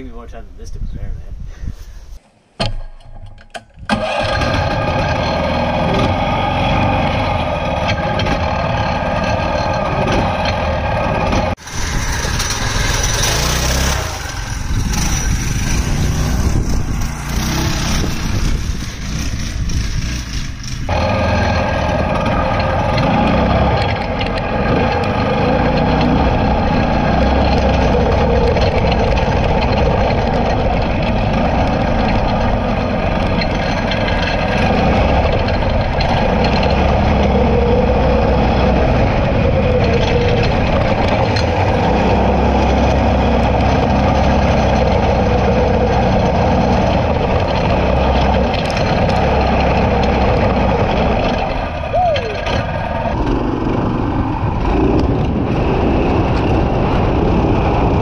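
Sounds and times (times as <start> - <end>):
go-kart engine running: 3.9 - 58.0.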